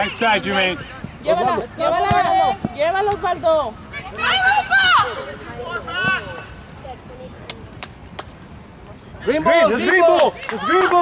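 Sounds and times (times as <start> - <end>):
murmur of soccer match: 0.0 - 11.0
soccer ball being kicked: 0.8 - 3.4.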